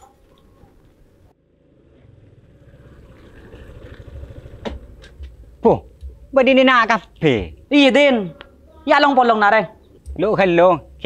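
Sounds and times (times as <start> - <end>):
scooter engine running: 1.4 - 6.3.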